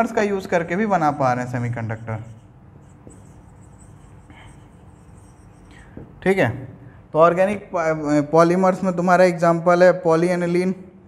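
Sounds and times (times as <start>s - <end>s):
marker scratching on whiteboard: 0.0s - 6.2s.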